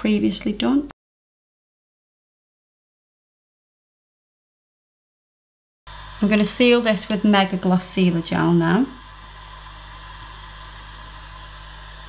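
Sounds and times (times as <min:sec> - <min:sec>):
steady low hum: 0:05.9 - 0:12.0.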